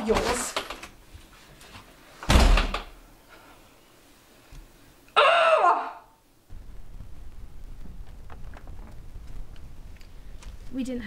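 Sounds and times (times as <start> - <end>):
front door slamming: 2.2 - 3.0.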